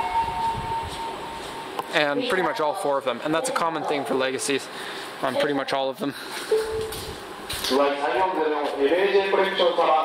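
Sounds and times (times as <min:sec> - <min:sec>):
high siren-like tone: 0:00.0 - 0:01.8.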